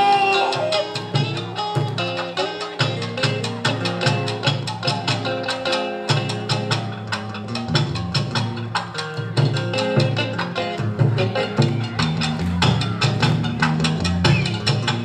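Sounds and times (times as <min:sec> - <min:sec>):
drums keeping brisk beat: 0:00.0 - 0:15.0.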